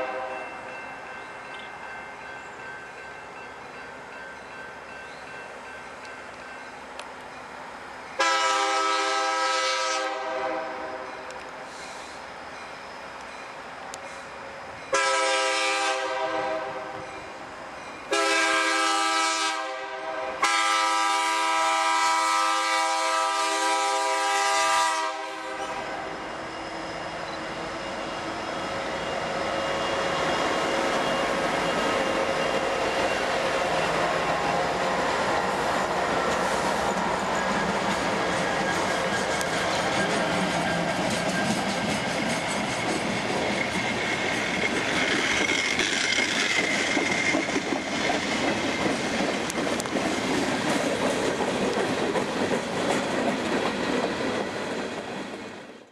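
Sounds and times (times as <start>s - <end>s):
locomotive air horn blasts: 0.0s - 0.4s, 8.2s - 11.1s, 14.9s - 17.0s, 18.1s - 26.2s
rail wheels clickety-clack: 0.0s - 55.9s
train passing rumble: 0.0s - 55.9s.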